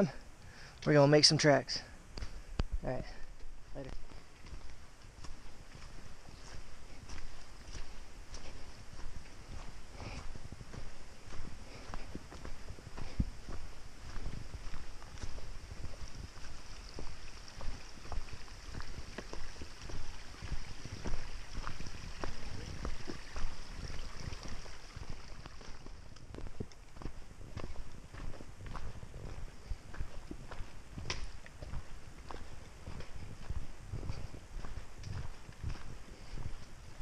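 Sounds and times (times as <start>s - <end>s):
footsteps on rocky trail: 0.0s - 37.0s.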